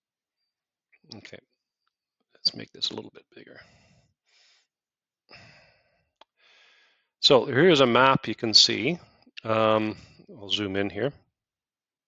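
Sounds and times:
breathing into headset microphone: 3.6s - 4.7s, 5.3s - 7.1s.

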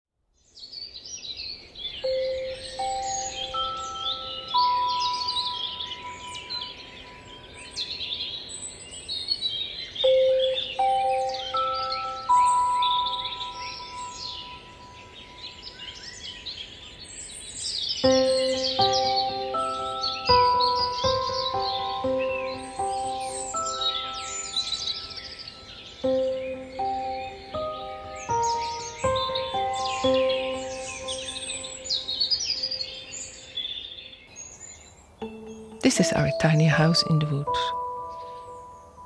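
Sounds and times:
songbirds singing: 0.4s - 39.0s
soft ringing music notes: 2.0s - 9.0s, 10.0s - 16.6s, 18.0s - 34.1s, 35.2s - 39.0s.

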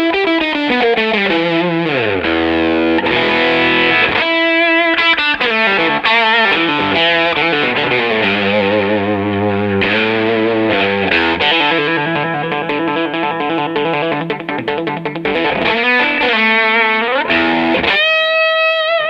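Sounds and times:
overdriven electric guitar: 0.0s - 19.0s.

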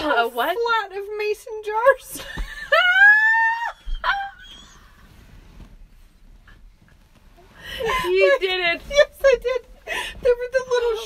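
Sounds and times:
faint background noise: 0.0s - 11.0s
woman squealing with laughter: 2.5s - 5.1s.

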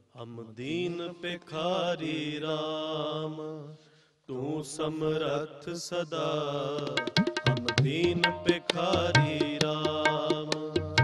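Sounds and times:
man singing devotional melody: 0.0s - 11.0s.

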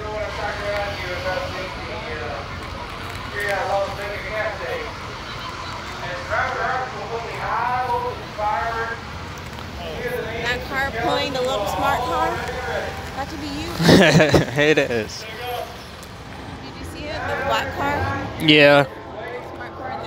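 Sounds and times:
people talking: 0.0s - 9.1s, 9.8s - 15.8s, 16.6s - 20.0s.

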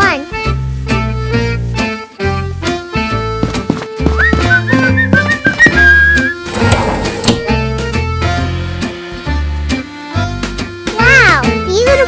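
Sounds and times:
upbeat background music: 0.0s - 12.0s
high wavering whistle-like melody: 4.2s - 6.5s.

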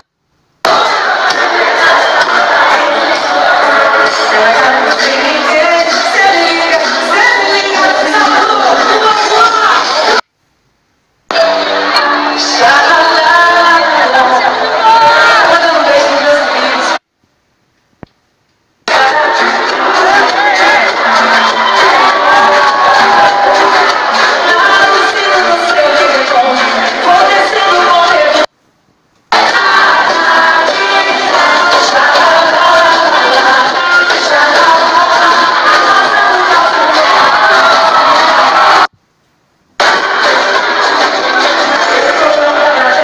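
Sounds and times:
crowd noise: 0.0s - 10.3s, 11.2s - 17.1s, 18.8s - 28.6s, 29.2s - 39.0s, 39.6s - 43.0s
loud music: 0.6s - 10.2s, 11.3s - 17.0s, 18.9s - 28.5s, 29.3s - 38.9s, 39.8s - 43.0s.

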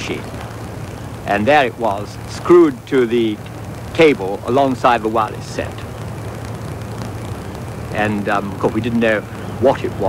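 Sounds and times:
low hum with hiss: 0.0s - 10.0s.

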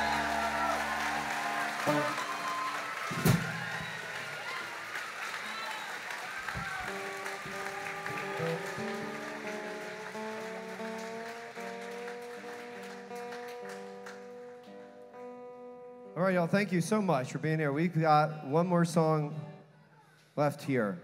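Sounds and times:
audience applause: 0.0s - 14.7s.

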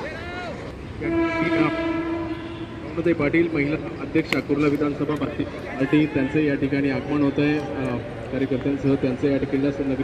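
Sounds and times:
long horn blast: 1.0s - 3.0s.

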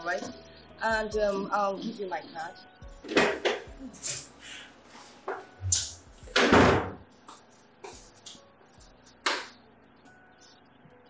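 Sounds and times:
door opening and shutting: 5.6s - 7.0s.

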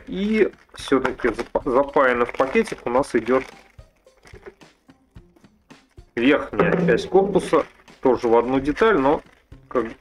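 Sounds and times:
plastic bag rustling: 0.1s - 4.9s, 5.6s - 10.0s.

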